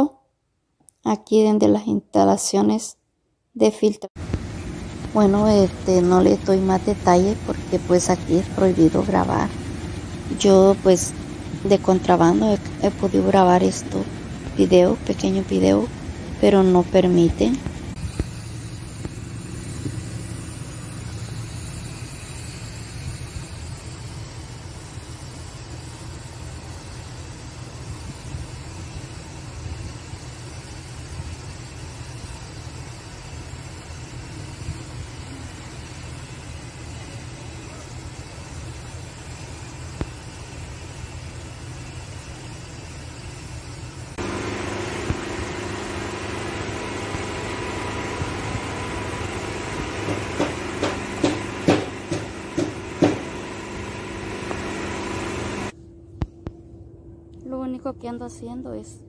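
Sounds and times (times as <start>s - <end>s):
loud machine hum: 4.2s - 55.8s
low machinery rumble: 4.2s - 59.0s
sharp knocks: 50.0s - 53.3s.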